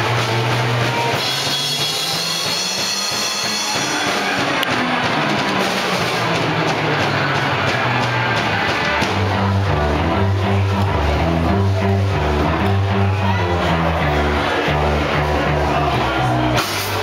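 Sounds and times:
live rock music: 0.0 - 17.0
repeating bass line: 0.0 - 17.0.

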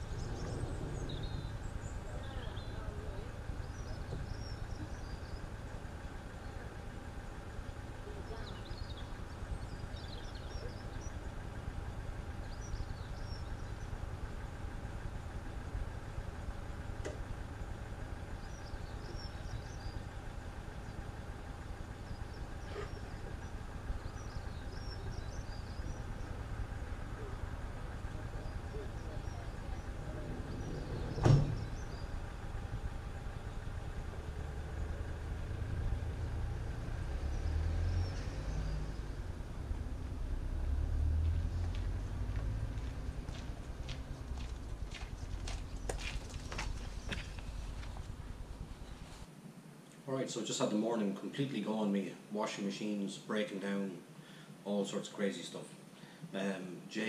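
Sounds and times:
minibus engine idling: 0.0 - 49.8, 54.0 - 54.6
door slamming shut: 31.0 - 31.7.

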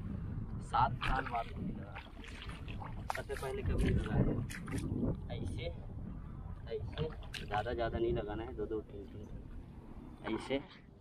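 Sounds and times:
feet sloshing through water and mud: 1.0 - 4.9, 6.9 - 7.6.

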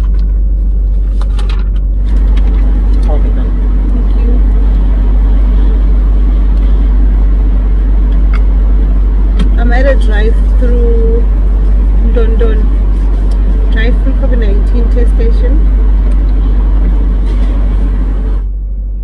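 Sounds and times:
car idling from inside cabin: 0.0 - 19.0.

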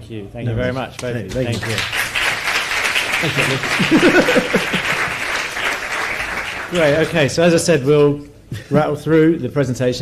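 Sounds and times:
audience applauding: 1.5 - 7.5.

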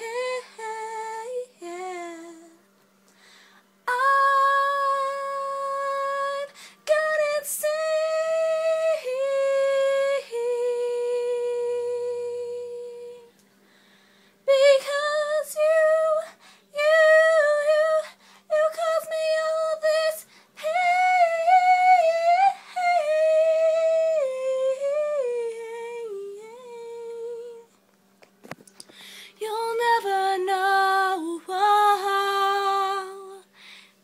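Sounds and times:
woman singing unaccompanied: 0.0 - 2.6, 3.8 - 13.3, 14.5 - 27.8, 29.3 - 33.6.

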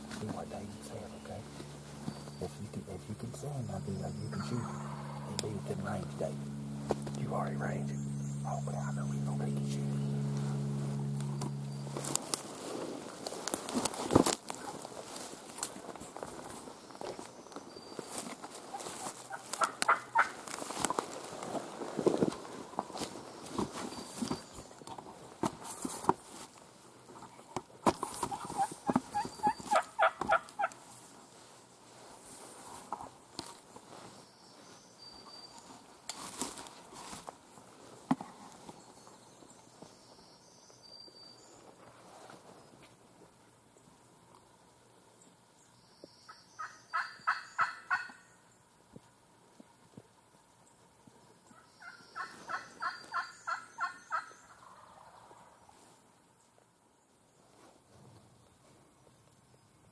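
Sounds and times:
steady low hum: 0.0 - 34.4
dry leaves crackling: 3.3 - 27.0, 35.5 - 39.3
turkeys gobbling: 4.3 - 5.5, 18.6 - 21.3, 28.2 - 30.8, 46.6 - 48.3, 51.6 - 55.6.

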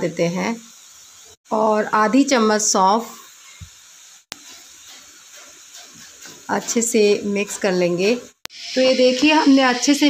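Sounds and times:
food hissing in a hot pan: 0.0 - 10.0.

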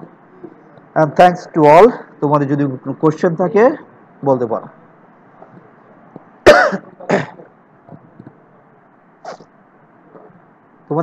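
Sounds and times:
person coughing: 6.4 - 7.5.

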